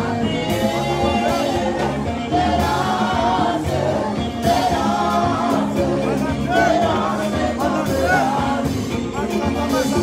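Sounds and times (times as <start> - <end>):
instrumental accompaniment: 0.0 - 10.0
voices singing worship song: 0.0 - 10.0.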